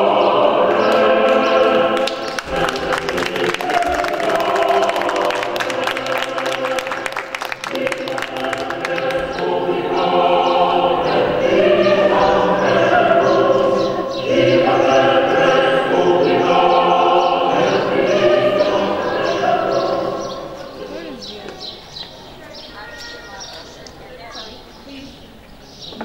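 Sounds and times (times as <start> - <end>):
group of voices singing: 0.0 - 21.5.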